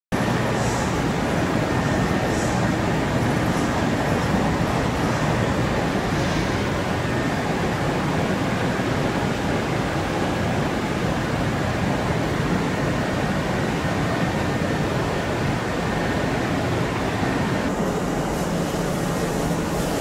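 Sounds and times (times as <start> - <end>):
electric train equipment rumble: 0.2 - 20.0.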